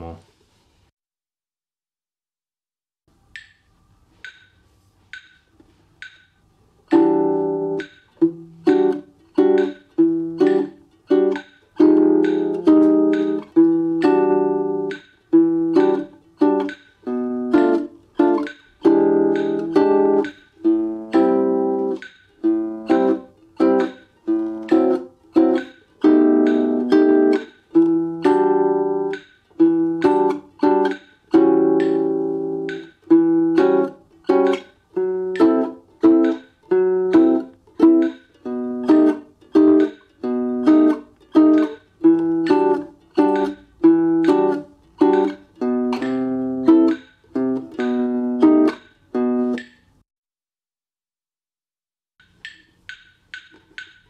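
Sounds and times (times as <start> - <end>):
nylon-string guitar chords: 6.9 - 49.7.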